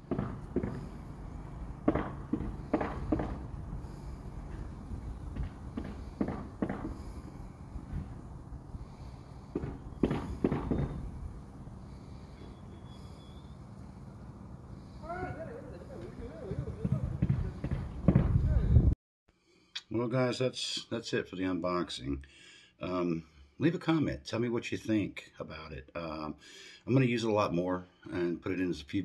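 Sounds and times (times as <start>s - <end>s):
sharp knocks and thumps: 0.0s - 1.0s, 1.8s - 3.5s, 5.3s - 7.2s, 9.5s - 11.0s, 16.8s - 18.4s.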